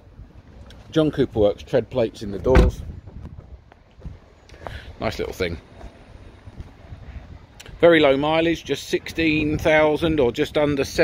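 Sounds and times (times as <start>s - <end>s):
footsteps ticks and scuffs: 3.2s - 4.8s, 5.7s - 6.8s.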